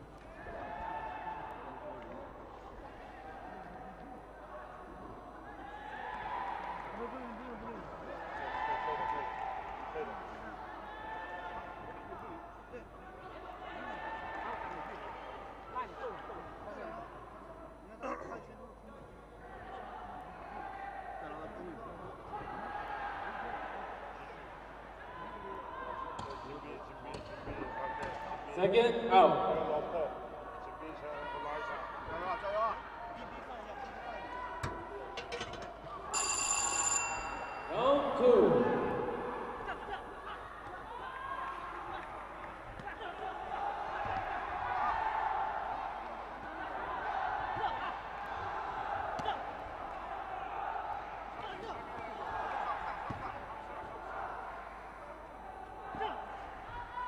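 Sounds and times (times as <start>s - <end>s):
arena chatter: 0.0s - 57.0s
voices in a hall: 0.0s - 57.0s
boxing bell ringing: 35.3s - 39.0s.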